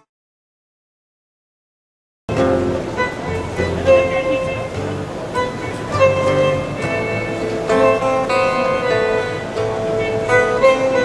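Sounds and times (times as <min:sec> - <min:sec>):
acoustic guitar strumming: 0:02.3 - 0:11.0
electronic wind instrument melody: 0:02.3 - 0:11.0.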